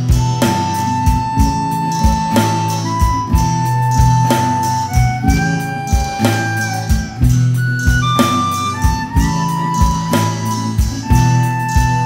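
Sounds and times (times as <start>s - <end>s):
acoustic bass: 0.0s - 12.0s
acoustic guitar: 0.0s - 12.0s
harmonica playing held notes: 0.0s - 12.0s
programmed drum beat: 0.0s - 12.0s.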